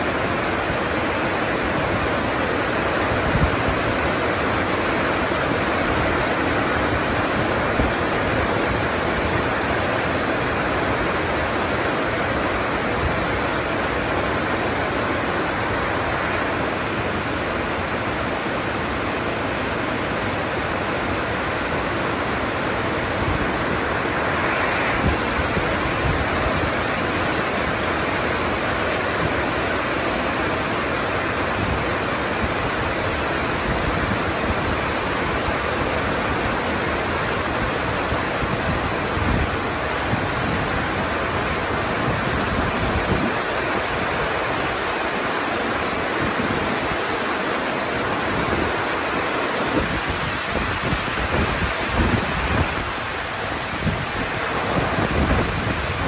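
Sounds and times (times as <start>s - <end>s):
wind gusting: 0.0s - 30.6s, 31.2s - 56.0s
heavy rain downpour: 0.0s - 56.0s.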